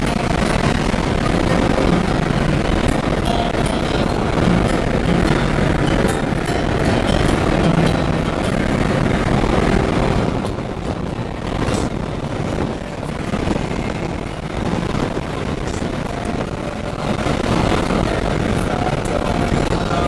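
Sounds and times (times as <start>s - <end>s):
car engine running hard: 0.0s - 20.0s
wind and road noise: 0.0s - 20.0s.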